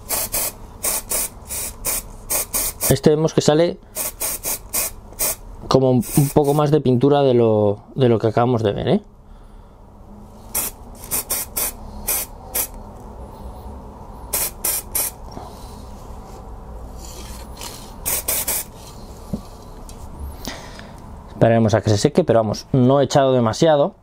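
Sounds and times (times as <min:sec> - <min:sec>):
spray can hissing: 0:00.0 - 0:03.0, 0:04.0 - 0:05.4, 0:06.0 - 0:06.6, 0:10.5 - 0:12.8, 0:14.3 - 0:15.2, 0:17.6 - 0:18.7.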